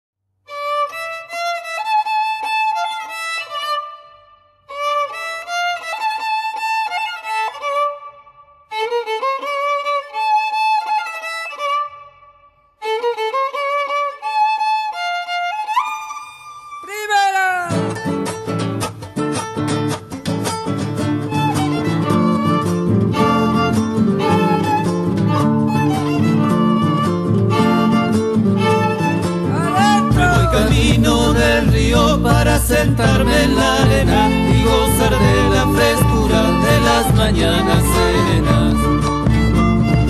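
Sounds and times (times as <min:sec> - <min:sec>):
solo violin melody: 0:00.5 - 0:16.9, 0:21.2 - 0:40.0
guitars and folk group playing: 0:16.9 - 0:40.0.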